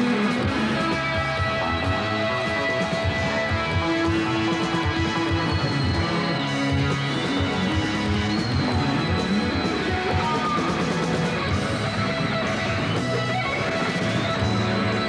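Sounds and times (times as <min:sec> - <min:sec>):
drum kit: 0:00.0 - 0:15.0
electric guitar sustained lead notes: 0:00.0 - 0:15.0.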